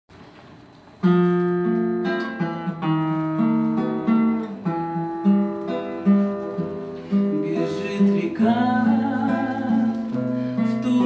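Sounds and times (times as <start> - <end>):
classical guitar playing: 0.6 - 11.0.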